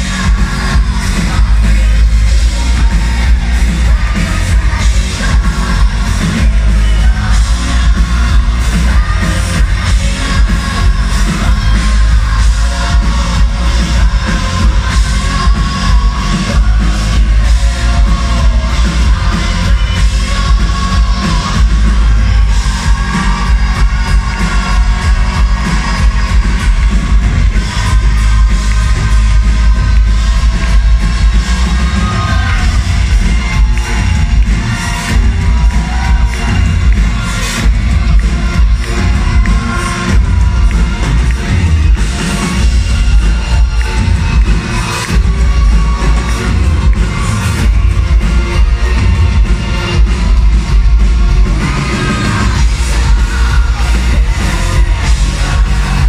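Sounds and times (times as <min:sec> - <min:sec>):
crowd noise: 0:00.0 - 0:56.0
heavy bass and drums: 0:00.0 - 0:56.0
live rock band playing: 0:00.0 - 0:56.0
person singing: 0:00.0 - 0:56.0.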